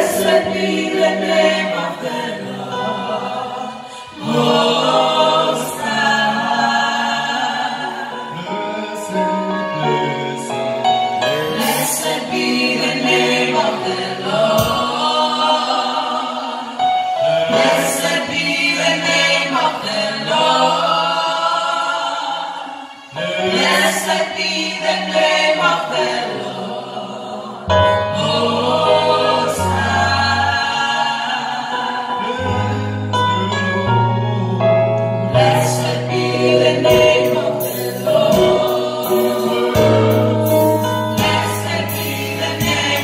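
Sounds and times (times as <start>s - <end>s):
gospel vocal group singing: 0.0s - 43.0s.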